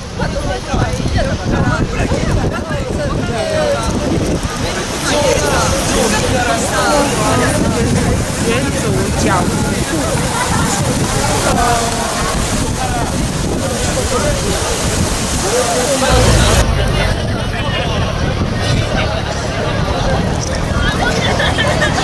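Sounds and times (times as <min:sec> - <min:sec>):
crowd babble: 0:00.0 - 0:22.0
low rumble: 0:16.1 - 0:20.4.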